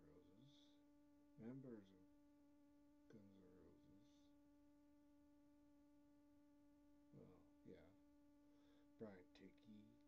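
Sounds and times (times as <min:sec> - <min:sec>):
faint voice-like sound: 0:00.0 - 0:00.8, 0:03.1 - 0:04.3, 0:07.2 - 0:07.9, 0:09.0 - 0:10.0
faint low hum: 0:00.0 - 0:10.0.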